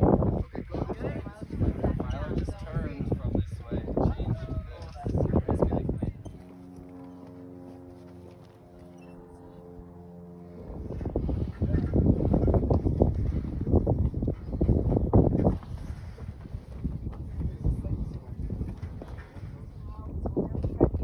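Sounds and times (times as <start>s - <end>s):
steady droning hum: 0.0s - 21.0s.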